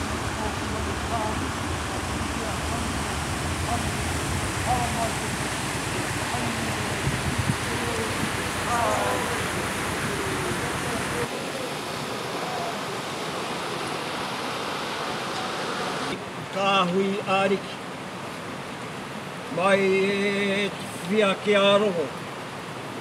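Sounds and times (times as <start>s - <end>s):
crowd talking: 0.0s - 14.0s
river rushing over rapid: 0.0s - 23.0s.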